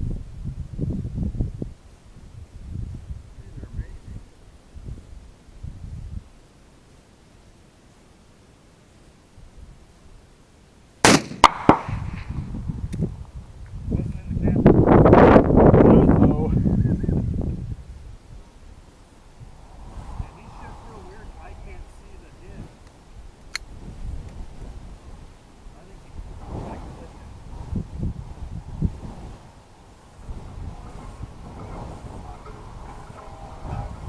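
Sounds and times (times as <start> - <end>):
wind rumble on microphone: 0.0 - 6.4, 11.5 - 34.0
pistol shot: 11.0 - 12.4
sharp cracks: 11.0 - 13.1, 22.8 - 24.4
pistol metallic click: 23.4 - 23.7.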